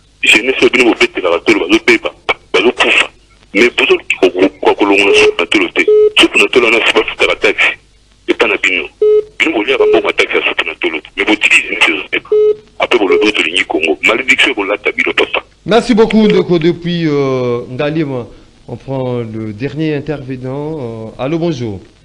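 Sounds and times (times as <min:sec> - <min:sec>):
person speaking over telephone: 0:00.2 - 0:16.5
short beeping tones: 0:05.2 - 0:06.2.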